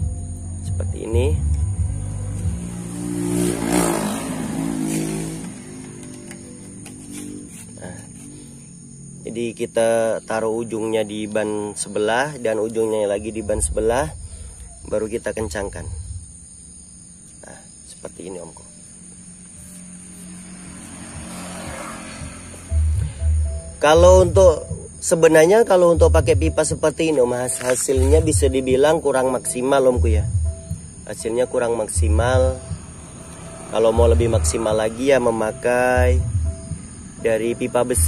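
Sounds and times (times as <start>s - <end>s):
vehicle driving past: 1.5s - 9.3s, 19.0s - 24.4s, 31.5s - 38.0s.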